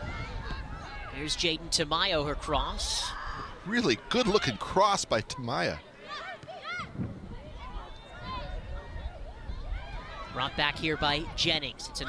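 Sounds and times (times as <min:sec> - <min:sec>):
players shouting: 0:02.3 - 0:12.0.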